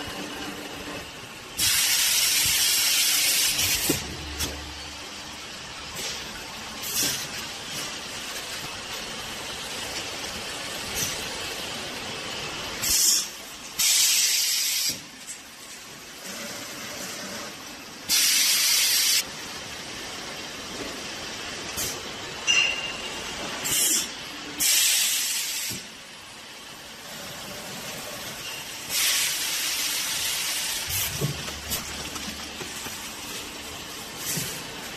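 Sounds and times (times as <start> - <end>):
packing machine humming: 0.0 - 13.4, 26.8 - 34.9
sharp air hisses: 1.6 - 4.0, 12.8 - 15.0, 23.6 - 25.9.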